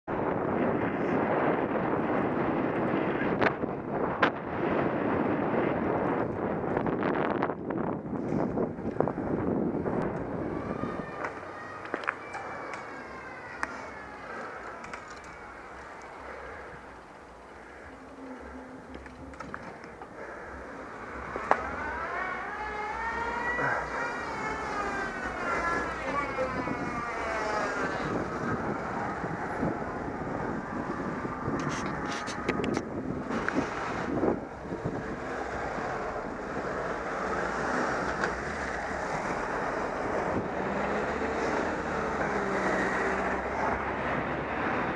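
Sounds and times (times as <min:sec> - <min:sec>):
road rumble: 0:00.0 - 0:44.9
street traffic: 0:00.0 - 0:44.9
wind rushing over microphone: 0:00.1 - 0:44.9.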